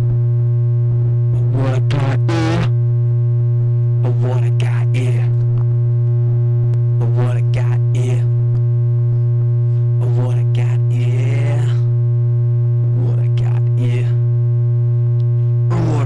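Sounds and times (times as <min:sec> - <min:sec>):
low sine-tone drone: 0:00.0 - 0:16.0
steady electronic tones: 0:01.4 - 0:02.8, 0:15.6 - 0:16.0.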